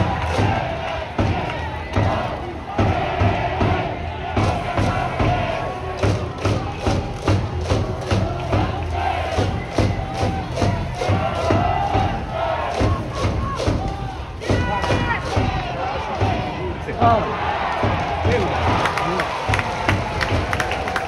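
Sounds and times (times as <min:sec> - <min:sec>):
crowd chanting in unison: 0:00.0 - 0:21.0
steady drum beat: 0:00.0 - 0:21.0.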